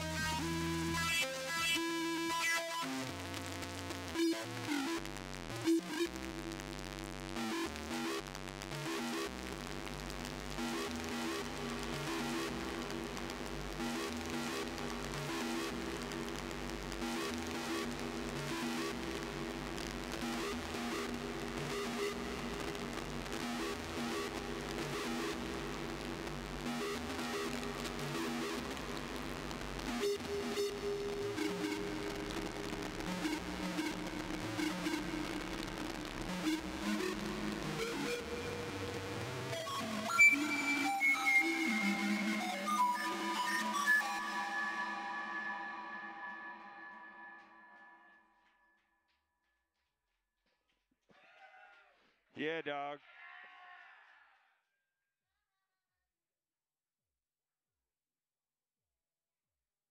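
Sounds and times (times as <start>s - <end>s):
dark electronic synthesizer music: 0.0s - 48.3s.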